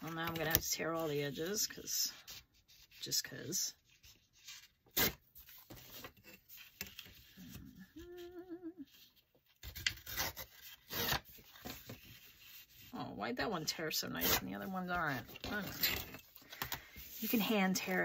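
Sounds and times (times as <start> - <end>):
person humming: 7.5 - 8.9
paper ripping: 9.6 - 12.0.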